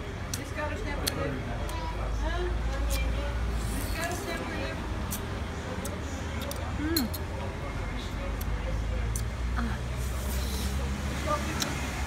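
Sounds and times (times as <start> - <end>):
faint background voices: 0.0 - 12.0
low traffic rumble: 0.0 - 12.0.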